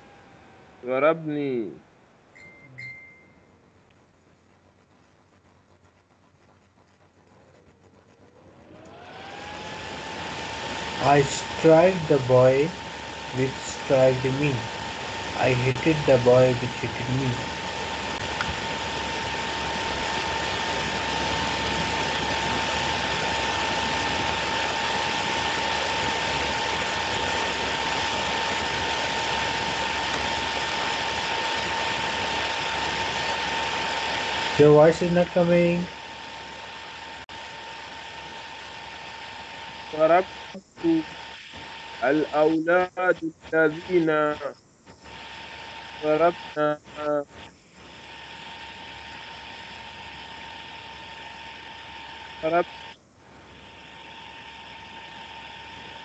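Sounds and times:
motor whine spinning up: 0:00.0 - 0:01.1, 0:07.7 - 0:56.0
thin constant tone: 0:00.0 - 0:09.1, 0:09.7 - 0:56.0
static hiss: 0:00.0 - 0:56.0
rushing noise: 0:08.4 - 0:56.0.

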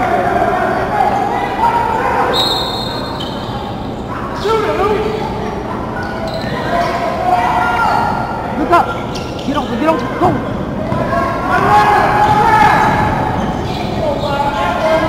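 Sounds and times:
voices in a hall: 0:00.0 - 0:15.0
sneakers squeaking: 0:01.1 - 0:15.0.

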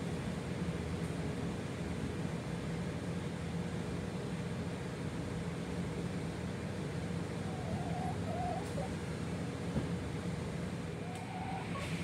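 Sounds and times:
hen clucking softly: 0:07.2 - 0:09.0, 0:11.0 - 0:12.0.

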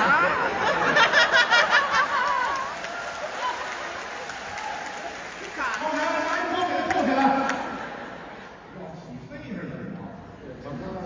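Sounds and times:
audience applauding: 0:00.7 - 0:08.2.

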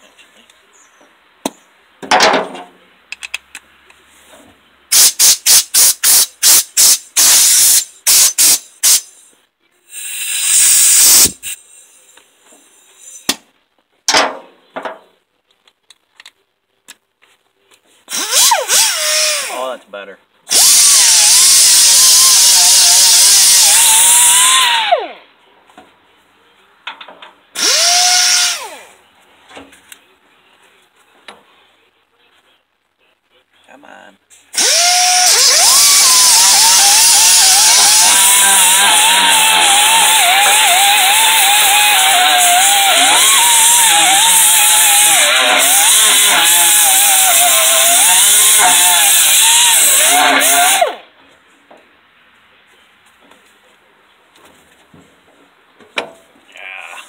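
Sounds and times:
air die grinder grinding steel: 0:34.6 - 0:50.9.

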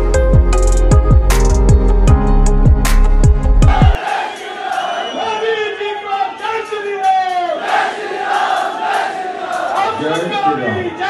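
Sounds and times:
crowd shouting and cheering: 0:03.6 - 0:11.0.

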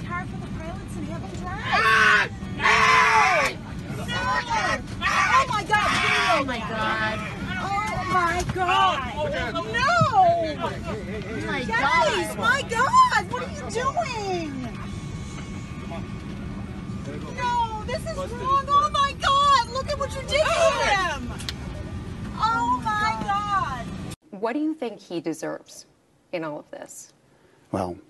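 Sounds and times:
airliner cabin hum: 0:00.0 - 0:24.2
faint passenger voices: 0:00.0 - 0:24.2
people shouting and crying out: 0:01.5 - 0:10.6, 0:17.3 - 0:21.4.

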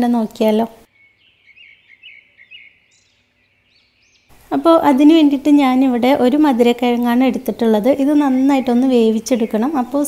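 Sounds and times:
low hiss: 0:04.3 - 0:07.4
person speaking: 0:04.4 - 0:10.0.

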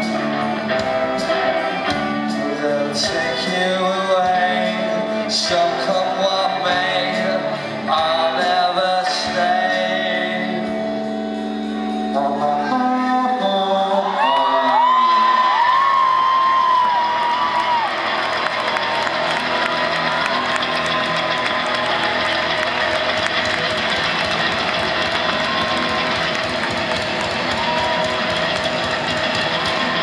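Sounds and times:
crowd cheering and clapping: 0:00.0 - 0:09.0, 0:13.6 - 0:30.0
rock song: 0:00.0 - 0:30.0.

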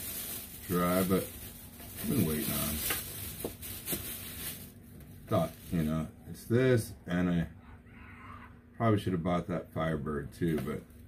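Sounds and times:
plastic bag rustling: 0:00.0 - 0:06.1.

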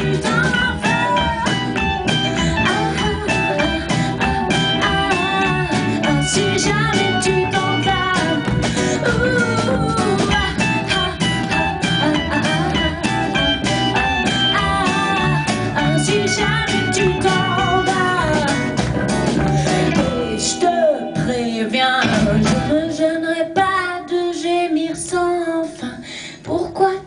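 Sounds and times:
person singing: 0:00.0 - 0:18.8, 0:19.4 - 0:26.0
drum kit: 0:00.0 - 0:23.1
electric guitar: 0:00.0 - 0:23.7
bass guitar: 0:00.0 - 0:23.8.

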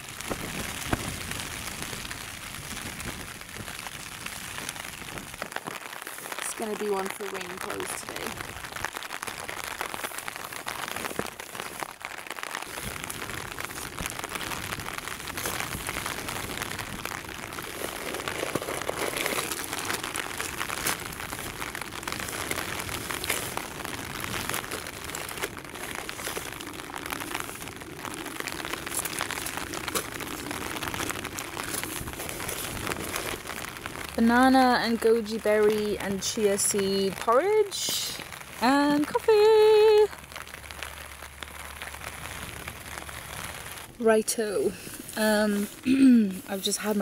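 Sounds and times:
rain pattering on tent fabric: 0:00.0 - 0:47.0
plastic food packets crinkling: 0:04.4 - 0:35.3.

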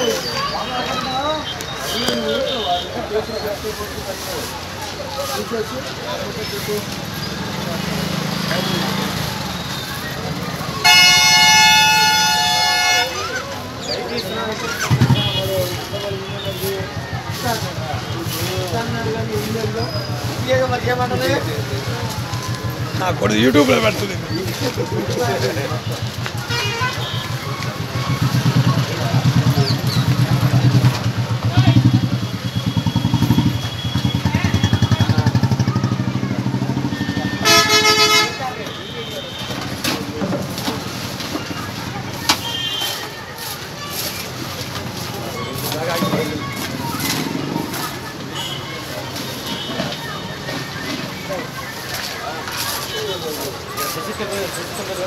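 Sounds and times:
vehicle horn blast: 0:10.8 - 0:13.2, 0:37.0 - 0:39.6.

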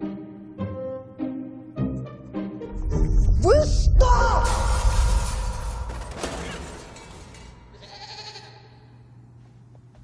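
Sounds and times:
goat bleating: 0:07.7 - 0:08.9.

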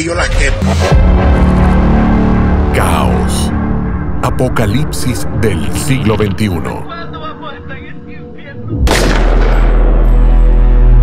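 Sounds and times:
deep drone: 0:00.3 - 0:07.0
echoing voice: 0:04.2 - 0:08.8
heavy boom: 0:08.8 - 0:10.1.

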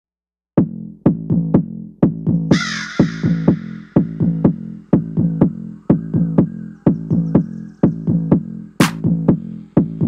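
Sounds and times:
house music beat: 0:00.6 - 0:10.0.

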